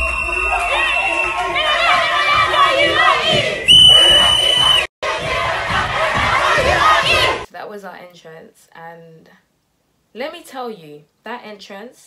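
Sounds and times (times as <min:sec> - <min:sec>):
audience cheering and shouting: 0:00.0 - 0:07.5.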